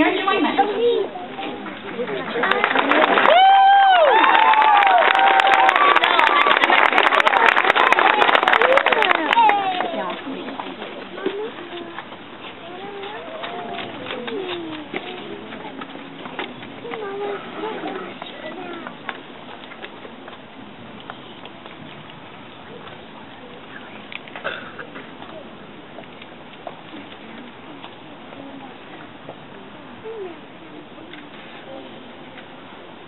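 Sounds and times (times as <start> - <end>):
children talking: 0.0 - 3.3, 5.5 - 20.2, 22.6 - 25.8, 26.8 - 32.6
outdoor background noise: 0.0 - 33.0.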